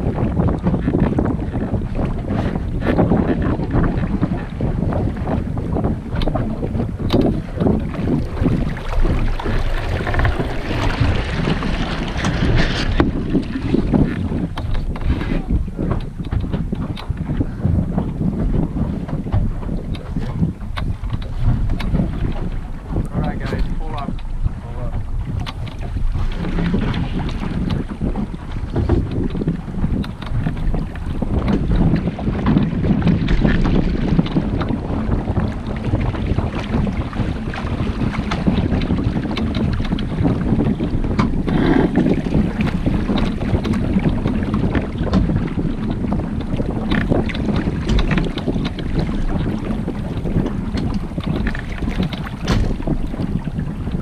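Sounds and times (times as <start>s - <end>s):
wind buffeting microphone: 0.0s - 54.0s
low rumble: 3.2s - 37.6s.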